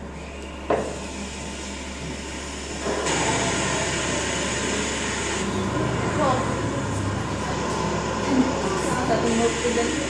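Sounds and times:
rushing machine-like noise: 1.0 - 10.0.

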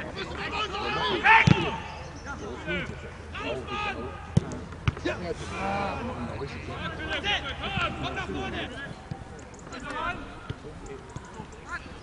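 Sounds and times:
voices calling: 0.0 - 12.0.

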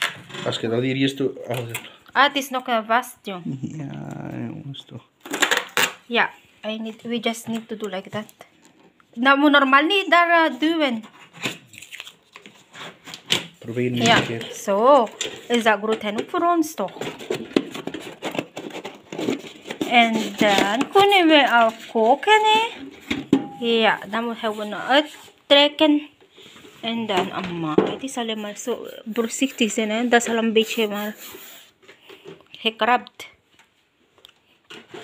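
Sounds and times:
person exclaiming: 3.5 - 4.7
cardboard scraping and rustling: 16.8 - 23.1.

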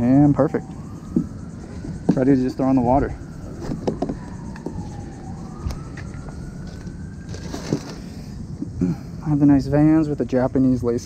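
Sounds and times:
distant siren wailing: 0.0 - 11.0
hands handling gear: 5.6 - 8.1.

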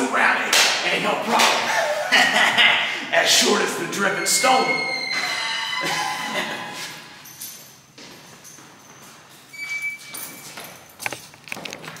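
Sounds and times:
footsteps on hard floor: 7.9 - 9.5.

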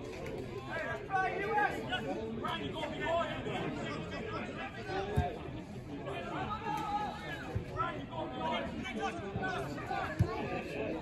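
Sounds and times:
voices talking and calling out: 0.1 - 11.0.

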